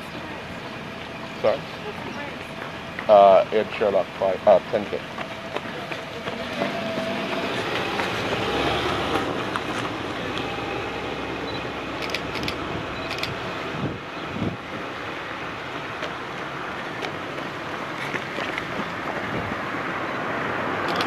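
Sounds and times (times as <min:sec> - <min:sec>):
car passing on asphalt: 0:00.0 - 0:21.0.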